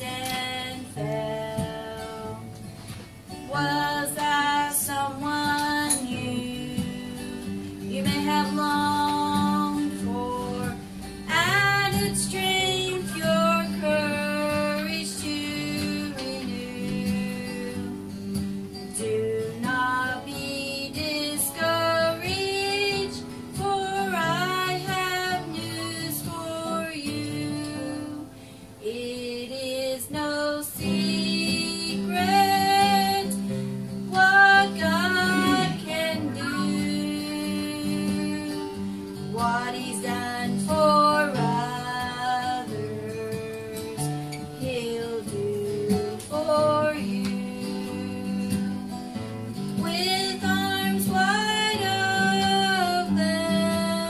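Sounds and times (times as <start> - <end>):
acoustic guitar: 0.0 - 54.0
woman singing: 0.0 - 54.0.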